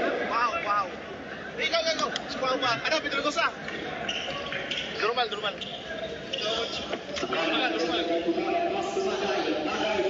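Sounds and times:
crowd noise: 0:00.0 - 0:10.0
voices calling out: 0:00.0 - 0:10.0.

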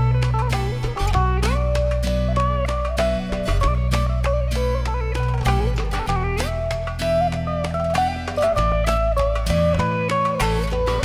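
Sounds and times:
bass line: 0:00.0 - 0:11.0
electric guitar lead melody: 0:00.0 - 0:11.0
hand drum strokes: 0:00.0 - 0:11.0.

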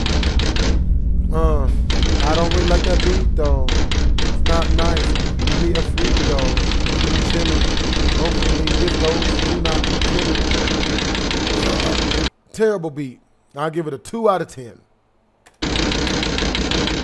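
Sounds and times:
man's voice: 0:01.3 - 0:03.8, 0:04.4 - 0:10.5
rapid banging on windows: 0:01.8 - 0:12.3.

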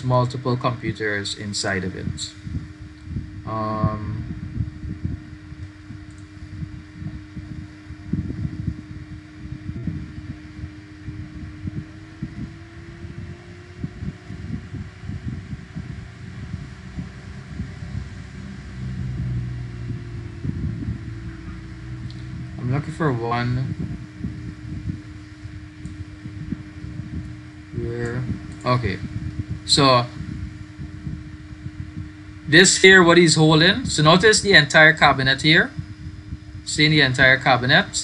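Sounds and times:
faint tone: 0:00.0 - 0:38.0
low mechanical hum: 0:00.0 - 0:38.0
uneven low rumble: 0:00.0 - 0:38.0.

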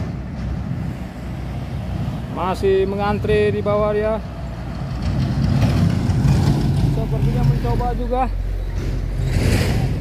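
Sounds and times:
dump truck driving past: 0:00.0 - 0:10.0.

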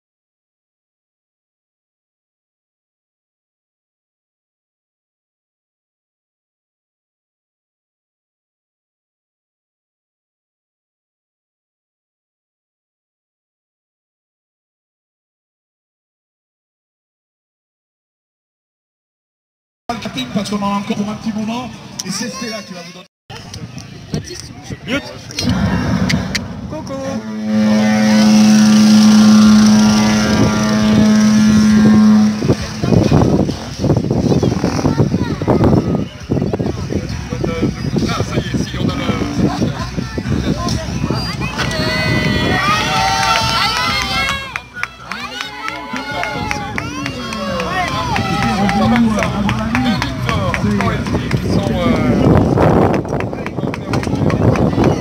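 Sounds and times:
crowd voices: 0:19.9 - 0:55.0
loud low horn blast: 0:25.4 - 0:34.8, 0:41.6 - 0:52.4.

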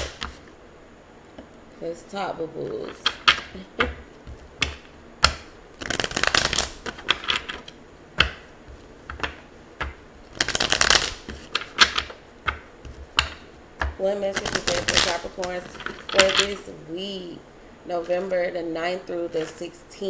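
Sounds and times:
cards riffling: 0:00.0 - 0:00.5, 0:03.0 - 0:13.5.

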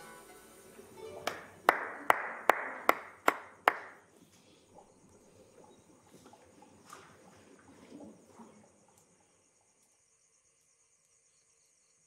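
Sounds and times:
person clapping slowly: 0:01.2 - 0:04.0.

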